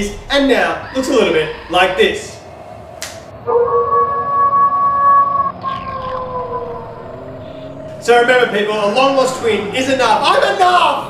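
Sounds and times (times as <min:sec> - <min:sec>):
eerie held tone: 0:00.0 - 0:11.0.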